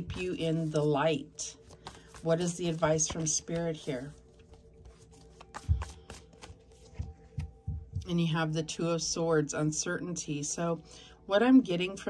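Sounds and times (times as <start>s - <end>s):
cards being shuffled: 0.0s - 7.6s.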